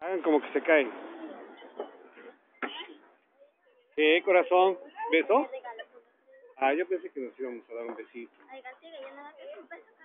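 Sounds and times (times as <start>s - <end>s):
conversational voices: 0.0s - 10.0s.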